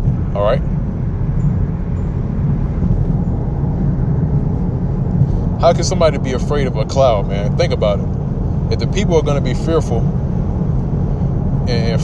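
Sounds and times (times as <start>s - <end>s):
steady low rumbling: 0.0s - 12.0s.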